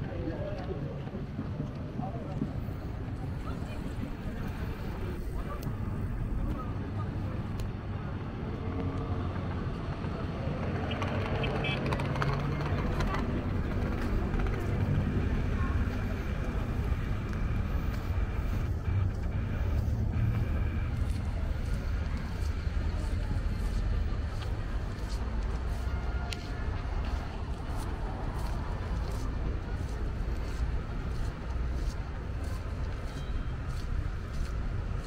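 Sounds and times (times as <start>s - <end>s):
low rumble of road traffic: 0.0s - 35.0s
passers-by talking: 0.0s - 35.0s.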